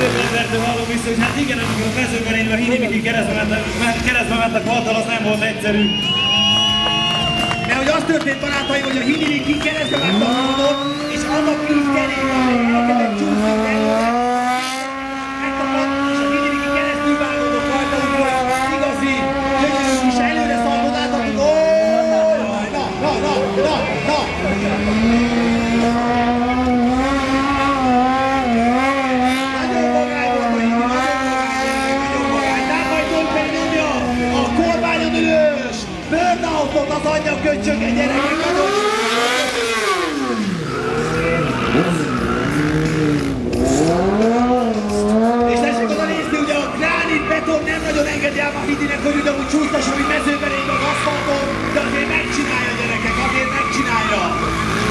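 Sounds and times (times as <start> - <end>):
quad bike engine at high revs: 0.0 - 4.3, 9.8 - 22.1, 24.4 - 35.3, 37.6 - 54.9.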